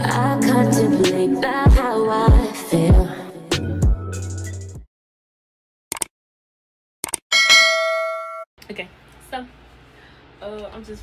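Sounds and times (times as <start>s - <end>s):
bright bell ding: 7.3s - 8.5s.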